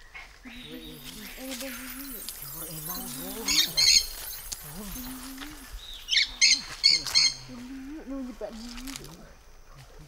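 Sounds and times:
bird squawks: 0.1s - 7.5s
person calling: 0.5s - 5.8s.

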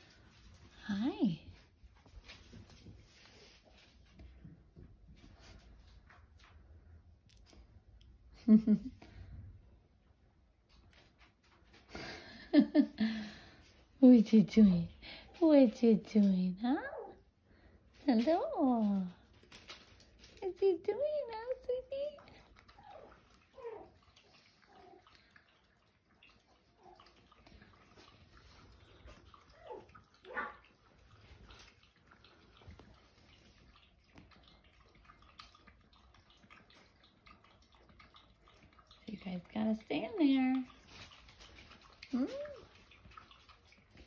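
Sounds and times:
puppies rustling on blanket: 0.0s - 6.8s, 39.2s - 44.0s.

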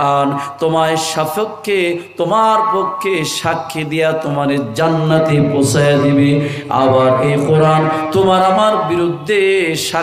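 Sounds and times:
man chanting sermon over microphones: 0.0s - 10.0s.

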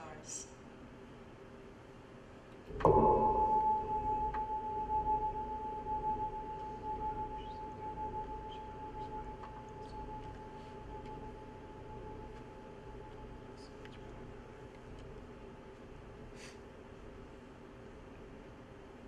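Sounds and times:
struck bell-like metal tone: 2.7s - 14.4s.

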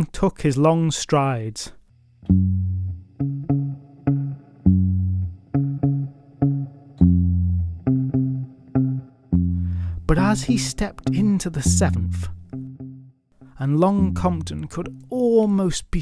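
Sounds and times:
plucked guitar low notes: 2.3s - 15.2s.

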